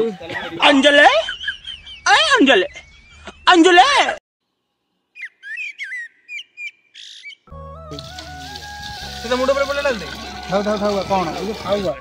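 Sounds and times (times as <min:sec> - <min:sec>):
whistled bird chirps: 0:05.1 - 0:07.5.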